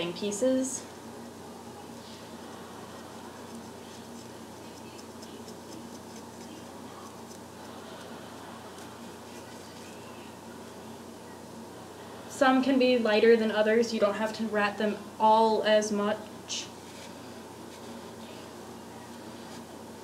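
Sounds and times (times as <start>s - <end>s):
steady background hiss: 0.0s - 20.0s
comb scratching hair: 2.0s - 10.1s, 16.8s - 18.2s.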